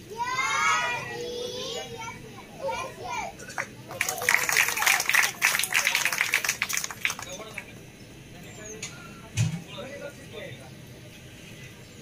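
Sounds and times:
children chattering: 0:00.0 - 0:07.6
sharp claps: 0:03.5 - 0:07.7.

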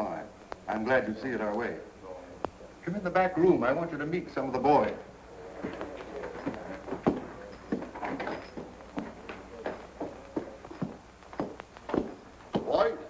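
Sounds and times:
faint steady hum: 0:00.0 - 0:13.0
footsteps on hard floor: 0:05.6 - 0:12.8.

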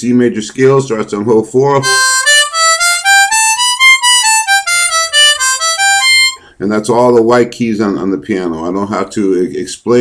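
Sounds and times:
harmonica playing a scale: 0:01.8 - 0:06.5.

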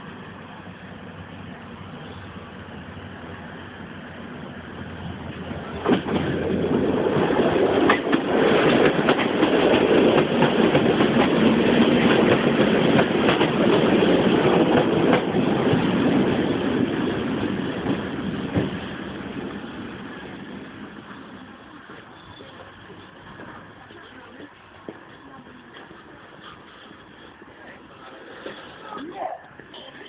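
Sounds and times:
train wheels rumbling: 0:00.0 - 0:30.0
wheels clicking over rail joints: 0:05.7 - 0:16.4, 0:21.9 - 0:30.0.

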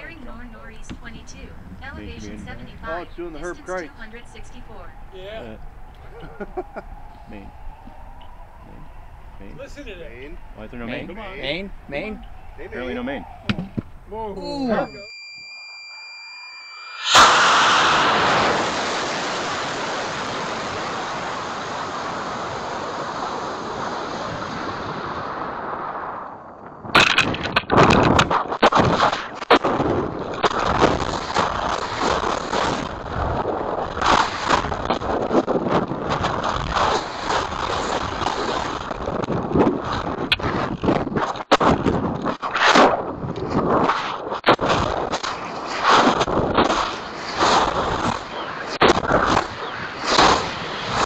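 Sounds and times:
steady high tone: 0:00.0 - 0:13.4, 0:14.1 - 0:18.5
gusty wind buffeting: 0:00.0 - 0:14.3, 0:17.0 - 0:51.0
ejection charge pop: 0:13.5 - 0:14.0, 0:17.0 - 0:19.4.

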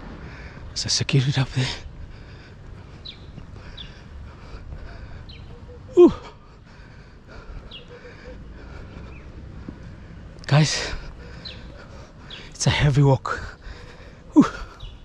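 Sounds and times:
man breathing hard: 0:00.0 - 0:00.8, 0:01.6 - 0:12.6, 0:13.2 - 0:15.0
man's breathless exclamation: 0:04.8 - 0:09.0, 0:13.3 - 0:14.9.

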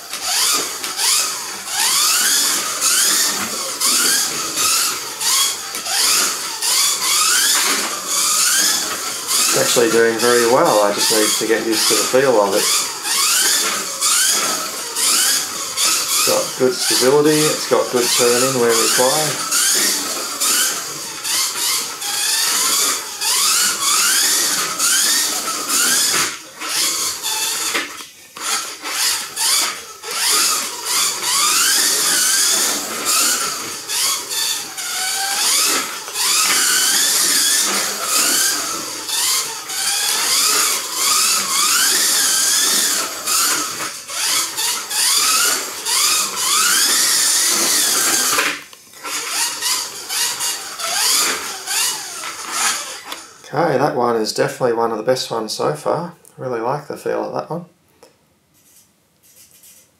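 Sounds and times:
toy car electric motor whining: 0:00.0 - 0:53.8, 0:58.6 - 0:59.9.

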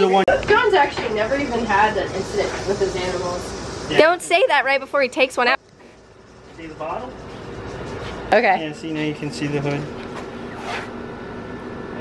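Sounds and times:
ventilation hum: 0:00.0 - 0:12.0.

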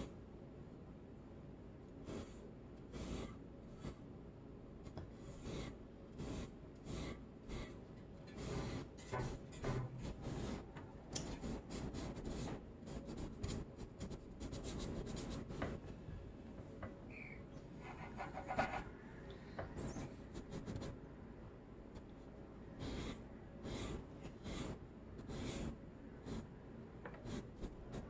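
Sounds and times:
paintbrush scratchy strokes: 0:02.0 - 0:04.0, 0:05.2 - 0:15.6, 0:17.1 - 0:19.0, 0:22.7 - 0:26.6, 0:27.2 - 0:28.0.

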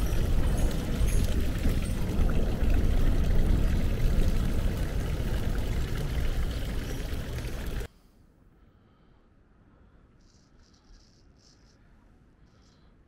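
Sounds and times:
fountain water pouring into basin: 0:00.0 - 0:07.9
heavy low rumble: 0:00.0 - 0:07.9
wind buffeting microphone: 0:00.0 - 0:07.9.

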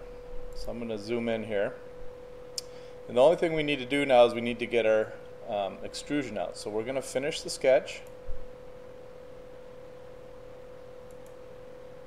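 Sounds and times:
faint electronic whine: 0:00.0 - 0:12.0.

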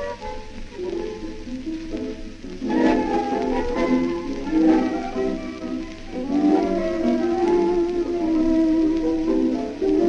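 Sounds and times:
record hiss: 0:00.0 - 0:10.0
tango orchestra on old record: 0:00.0 - 0:10.0.

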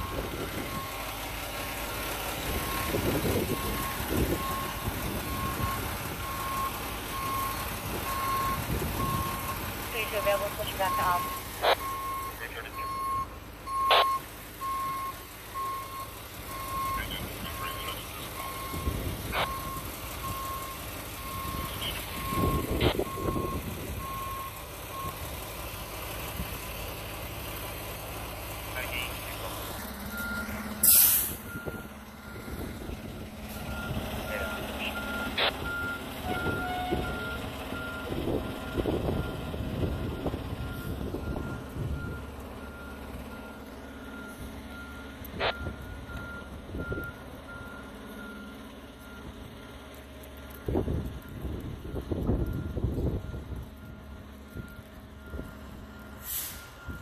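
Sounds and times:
reversing alarm beeping: 0:00.0 - 0:01.1, 0:02.6 - 0:25.2, 0:28.8 - 0:32.6, 0:33.5 - 0:49.7, 0:50.6 - 0:57.0
truck engine drone: 0:00.0 - 0:57.0.

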